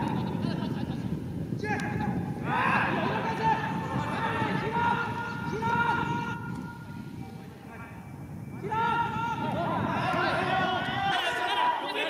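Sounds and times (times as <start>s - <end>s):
men shouting calls: 1.6s - 7.1s, 7.7s - 12.0s.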